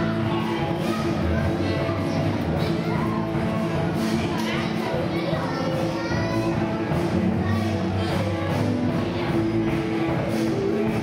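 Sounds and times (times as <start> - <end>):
music with held notes: 0.0 - 11.0.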